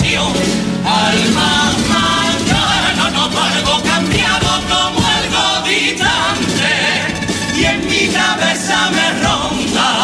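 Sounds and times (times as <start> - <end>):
men's choir singing: 0.0 - 10.0.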